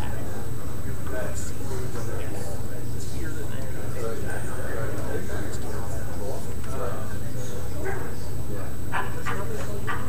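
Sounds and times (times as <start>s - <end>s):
indistinct conversation: 0.0s - 10.0s.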